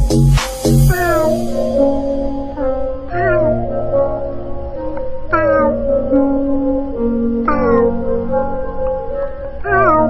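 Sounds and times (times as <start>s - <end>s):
music with low bass: 0.0s - 10.0s
kitten meowing: 3.1s - 3.6s, 7.4s - 8.0s, 9.6s - 10.0s.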